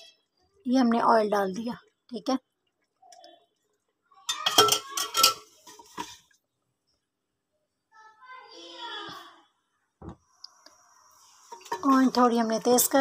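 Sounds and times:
utensils clinking on metal pot: 4.3s - 6.3s, 11.5s - 12.3s.

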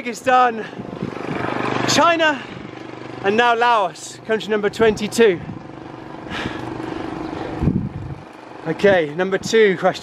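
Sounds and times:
vehicle passing by: 0.6s - 9.4s.

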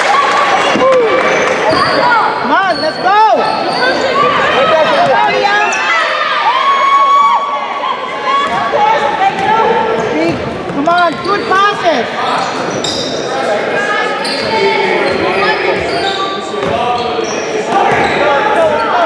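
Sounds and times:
voices calling out: 0.0s - 19.0s.

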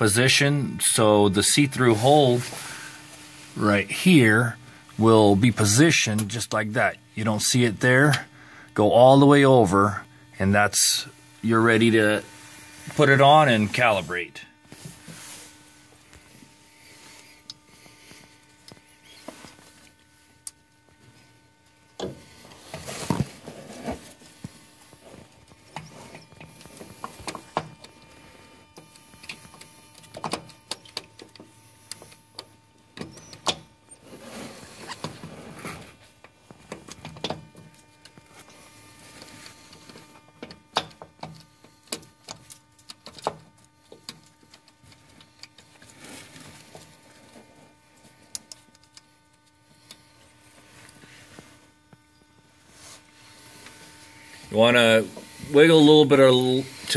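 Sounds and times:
faint steady hum: 0.0s - 56.9s.

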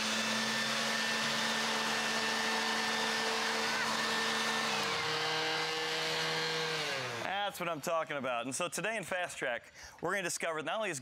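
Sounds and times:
electric leaf blowers whining: 0.0s - 7.8s.

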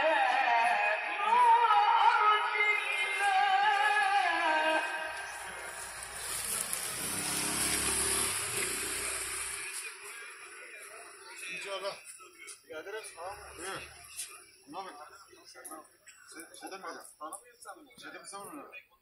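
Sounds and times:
chanting over loudspeakers: 0.0s - 11.6s
motor vehicle passing: 4.8s - 10.7s.

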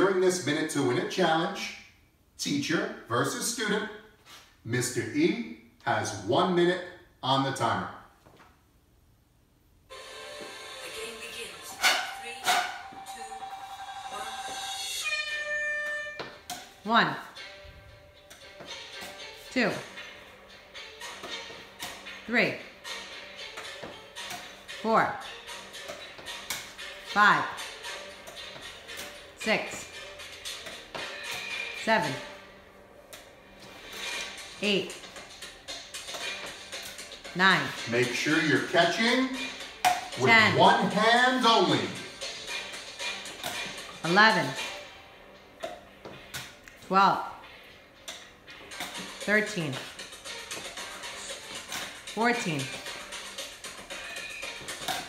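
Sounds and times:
background music: 9.9s - 55.0s
man counting aloud: 37.4s - 39.4s, 40.2s - 42.1s.

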